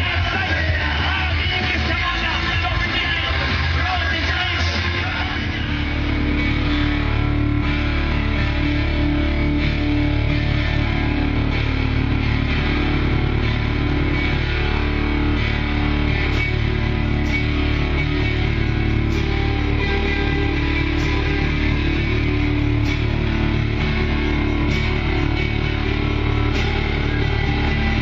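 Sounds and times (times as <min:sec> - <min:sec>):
heavy bass: 0:00.0 - 0:28.0
live rock band playing: 0:00.0 - 0:28.0
electric guitar droning chord: 0:03.4 - 0:28.0
keyboard droning chord: 0:05.0 - 0:28.0.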